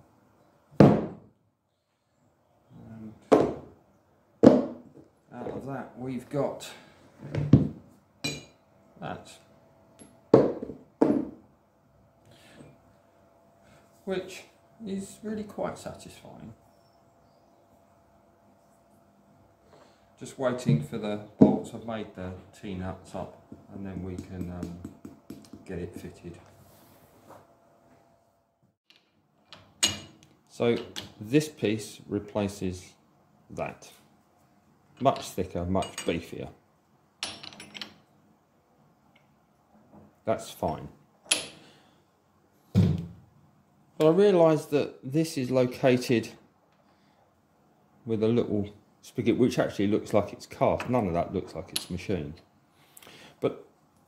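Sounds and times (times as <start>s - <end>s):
steel pieces clunking on metal bench: 41.3s - 41.6s.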